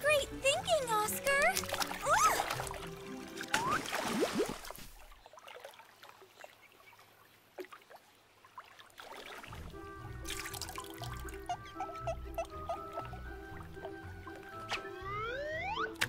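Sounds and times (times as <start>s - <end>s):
pond water trickling and dripping: 1.0s - 11.5s.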